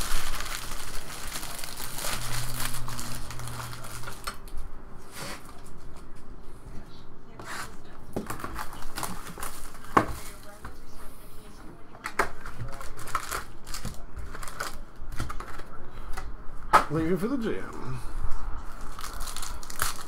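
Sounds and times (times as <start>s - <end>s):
foil crinkling: 0.0s - 4.4s, 8.3s - 10.6s, 12.4s - 15.8s, 18.8s - 20.0s.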